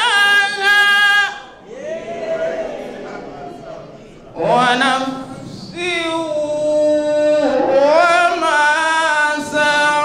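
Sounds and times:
man chanting melodically: 0.0s - 1.6s, 4.3s - 10.0s.

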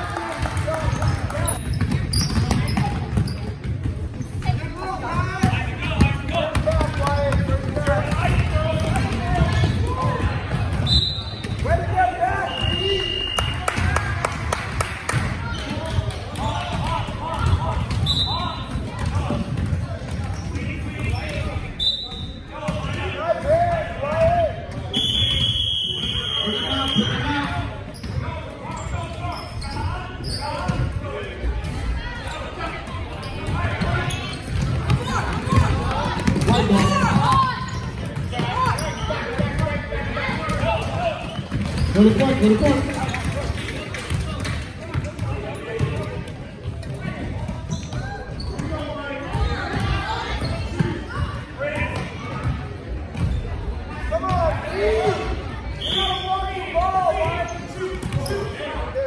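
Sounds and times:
chatter of spectators: 0.0s - 59.0s
shoe squeaks: 1.5s - 3.6s, 27.9s - 30.7s, 33.2s - 34.6s, 47.7s - 48.9s, 57.4s - 58.6s.

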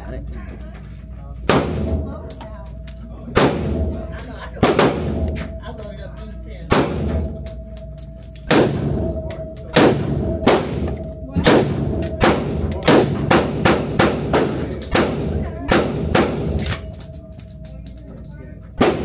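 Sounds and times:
rifle shots echoing indoors: 1.5s - 2.3s, 3.3s - 18.0s, 18.8s - 19.0s.

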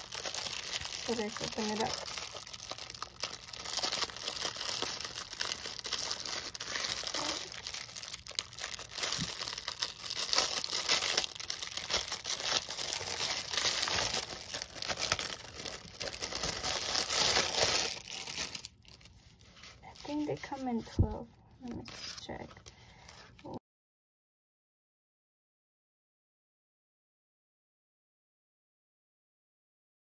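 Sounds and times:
plastic bags crinkling: 0.0s - 21.0s.

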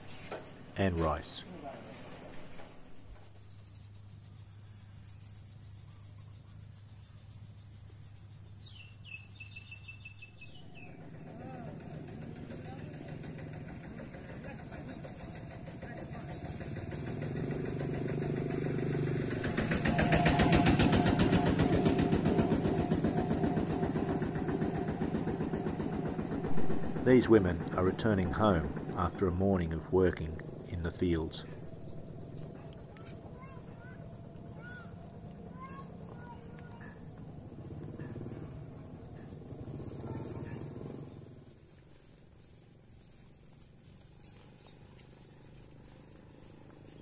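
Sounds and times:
high insect drone: 0.0s - 47.0s
small motor engine running: 8.6s - 47.0s.

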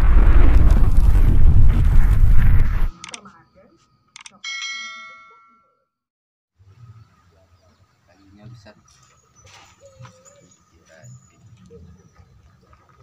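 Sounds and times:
bright bell ding: 3.4s - 5.9s.

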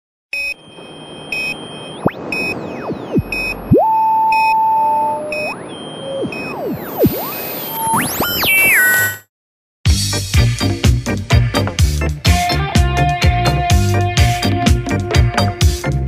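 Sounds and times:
short electronic beeps: 0.3s - 9.3s
steady held tone: 0.4s - 9.2s
synth pitch sweeps: 0.4s - 9.3s.

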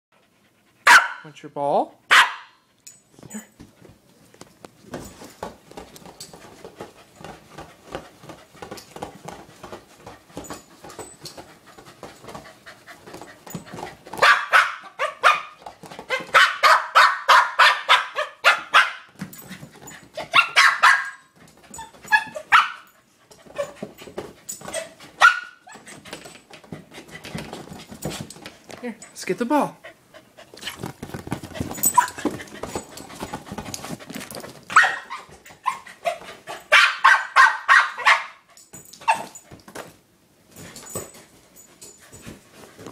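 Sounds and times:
dog barking: 0.9s - 1.3s, 2.1s - 2.6s, 14.2s - 15.6s, 16.2s - 19.1s, 20.3s - 21.3s, 22.1s - 22.9s, 25.2s - 25.6s, 34.7s - 35.8s, 36.7s - 38.4s.

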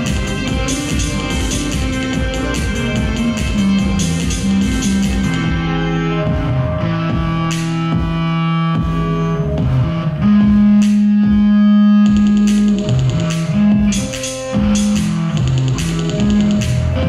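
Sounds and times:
overdriven electric bass notes: 0.0s - 17.0s.

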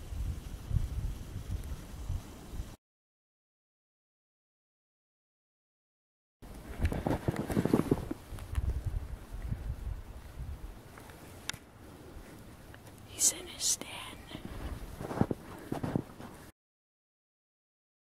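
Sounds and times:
low rumbling microphone noise: 6.6s - 16.5s
person whispering: 13.0s - 14.6s.

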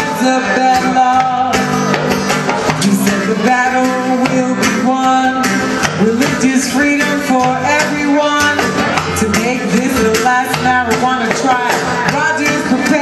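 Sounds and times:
live band music: 0.0s - 13.0s.

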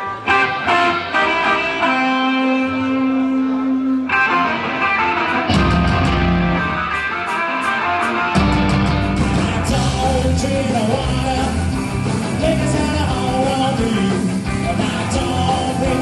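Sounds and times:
electric guitar notes: 0.0s - 16.0s
rock band playing: 0.0s - 16.0s.

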